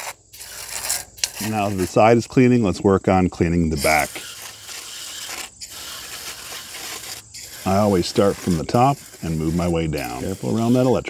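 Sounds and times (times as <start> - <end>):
aerosol can spraying hiss: 4.0 - 9.2.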